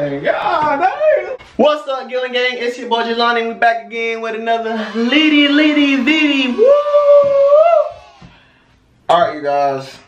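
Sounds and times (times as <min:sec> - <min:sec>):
man shouting woo: 0:04.8 - 0:08.1.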